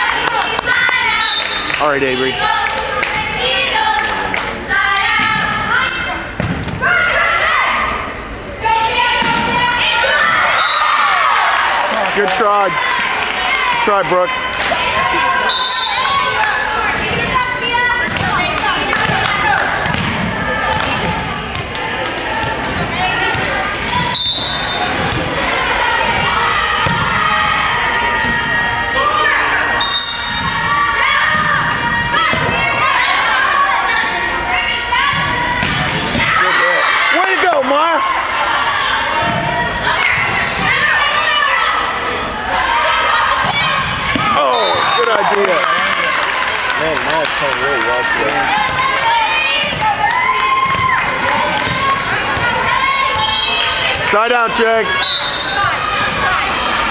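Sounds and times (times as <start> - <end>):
people calling out: 0.0 - 46.8.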